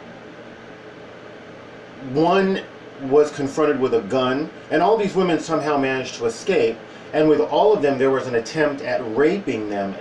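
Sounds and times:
faint low hum: 0.0 - 10.0
steady background hiss: 0.0 - 10.0.

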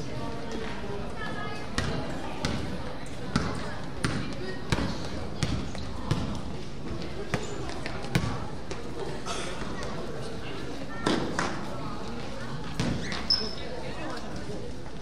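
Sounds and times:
basketball bouncing on gym floor: 1.8 - 2.7, 3.3 - 6.4, 7.3 - 8.4.

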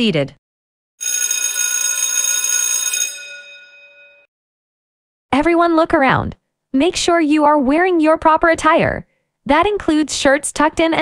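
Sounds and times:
bell ringing: 1.0 - 4.3.

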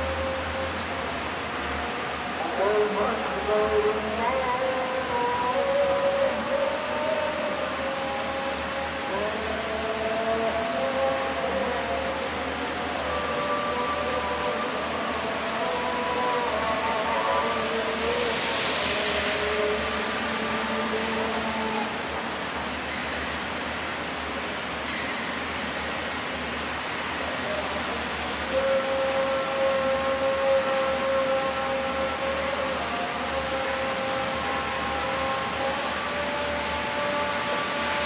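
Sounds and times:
steady hiss: 0.0 - 38.0.

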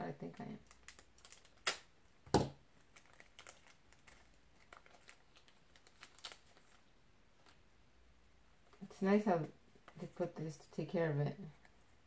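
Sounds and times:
plastic wrapper crinkling: 0.4 - 1.9, 2.8 - 7.7.

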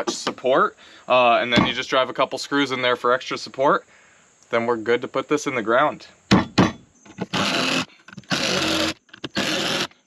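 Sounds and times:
sharp knocks: 1.5 - 1.8, 6.3 - 6.8
power drill driving screws: 7.2 - 10.0.

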